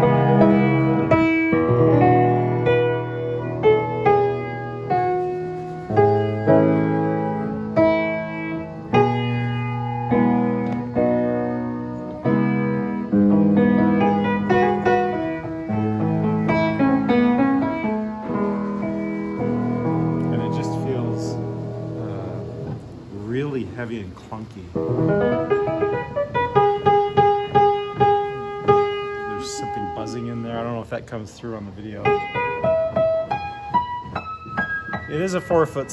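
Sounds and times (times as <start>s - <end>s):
piano chords and melody: 0.0s - 35.9s.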